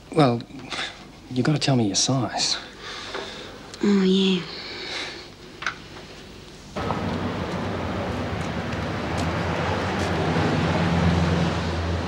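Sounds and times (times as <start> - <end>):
street traffic rush: 6.8 - 12.0
vehicle passing: 6.8 - 12.0.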